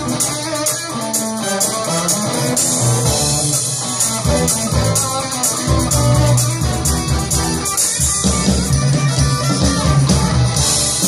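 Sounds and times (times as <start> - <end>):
drums and cymbal beat: 0.0 - 11.0
electric guitars: 0.0 - 11.0.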